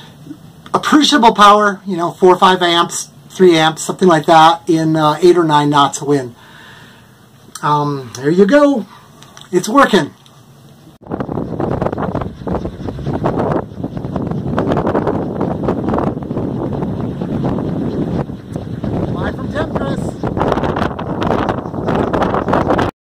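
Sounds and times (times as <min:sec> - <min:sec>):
wind buffeting microphone: 0:11.0 - 0:22.9.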